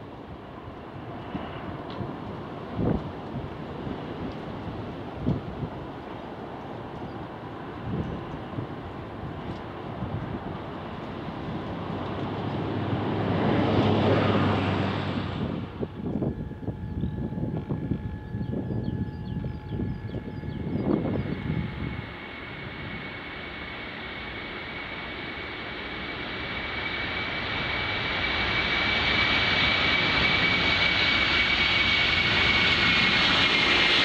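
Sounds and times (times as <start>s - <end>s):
jet engine noise: 0.0s - 34.0s
gusty rumbling: 0.8s - 34.0s.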